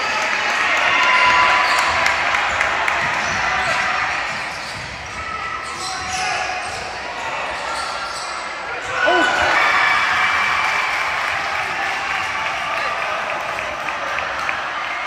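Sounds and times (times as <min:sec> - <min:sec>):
crowd chatter and shouts: 0:00.0 - 0:15.0.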